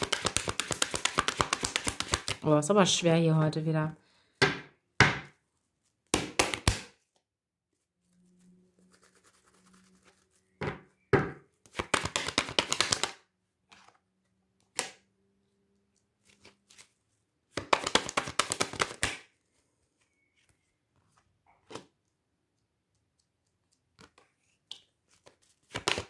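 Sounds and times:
cards being shuffled: 0.0 - 2.4, 11.6 - 14.0, 15.9 - 19.6, 23.4 - 26.0
card taps and knocks: 10.6 - 13.2.

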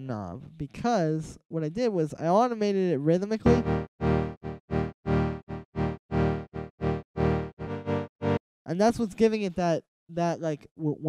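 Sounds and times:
pulsing synth chord: 3.5 - 8.4.

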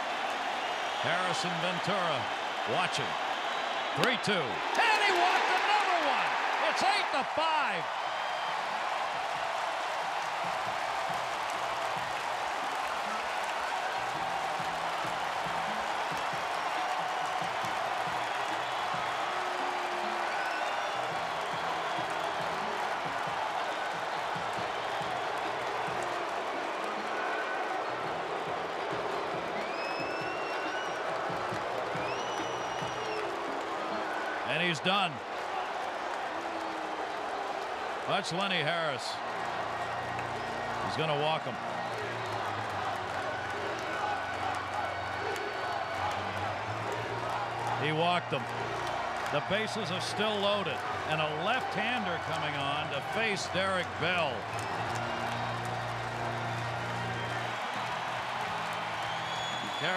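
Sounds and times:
stadium crowd cheering: 0.0 - 59.9.

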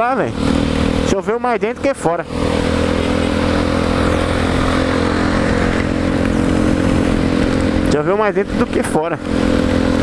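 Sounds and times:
motorcycle engine cruising: 0.0 - 10.0
wet road noise: 0.0 - 10.0
wind rushing: 2.3 - 7.9.

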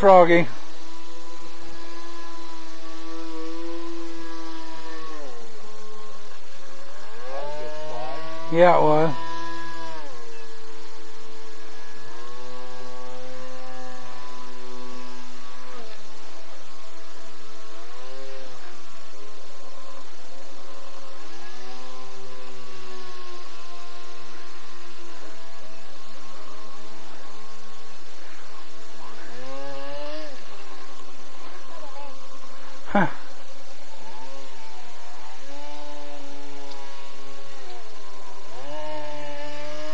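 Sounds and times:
model airboat engine and propeller: 0.0 - 39.9.

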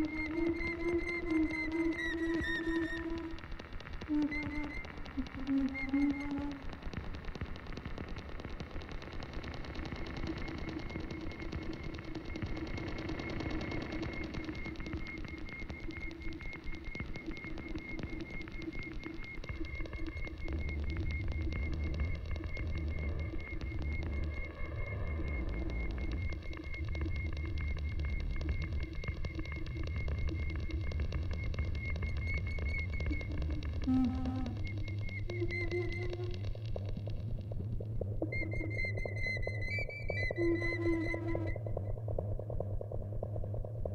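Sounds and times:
low steady drone: 20.2 - 38.3
high pulsing feedback tone: 20.4 - 37.0.

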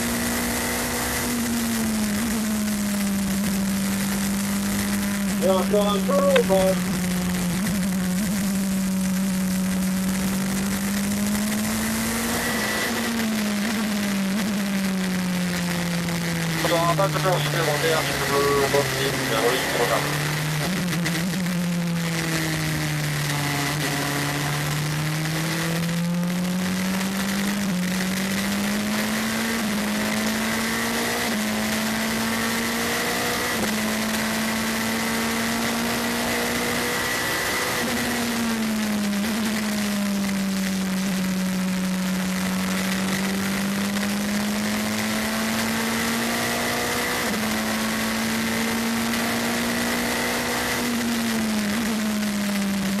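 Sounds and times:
race car engine: 0.0 - 53.0.

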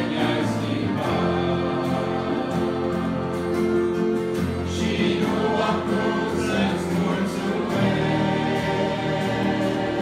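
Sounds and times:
mixed choir singing a hymn: 0.0 - 10.0
strummed acoustic guitar: 0.0 - 10.0.

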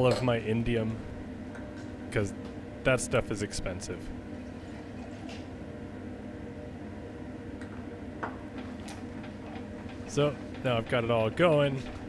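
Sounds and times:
low hum of lab equipment: 0.0 - 12.0.

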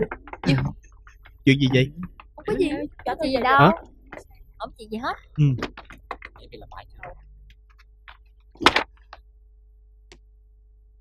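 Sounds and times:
person murmuring: 0.0 - 0.8, 5.4 - 5.7.

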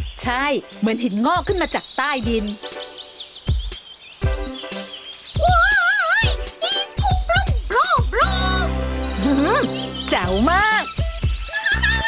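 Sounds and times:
background music: 0.0 - 12.0
high-pitched puppet voice: 5.4 - 9.7, 11.5 - 12.0.

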